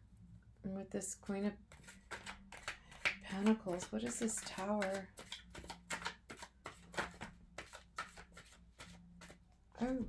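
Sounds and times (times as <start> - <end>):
cards being shuffled: 1.7 - 9.4.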